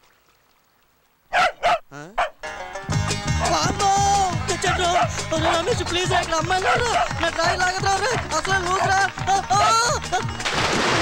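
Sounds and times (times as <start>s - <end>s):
dog barking: 1.3s - 2.4s, 4.7s - 5.7s, 6.6s - 7.2s, 9.6s - 9.8s
dog yelping: 1.3s - 2.4s, 4.7s - 5.7s, 9.6s - 9.9s
music with steady beat: 2.5s - 10.4s.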